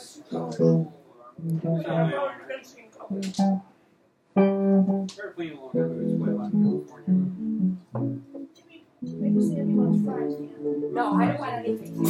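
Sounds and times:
plucked guitar notes: 0.3s - 2.3s, 3.1s - 3.7s, 4.4s - 5.1s, 5.8s - 12.0s.

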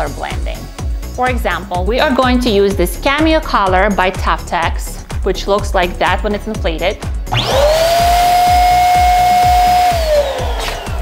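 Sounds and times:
background music with steady beat: 0.0s - 11.0s
electric balloon inflator motor whine: 7.3s - 11.0s.

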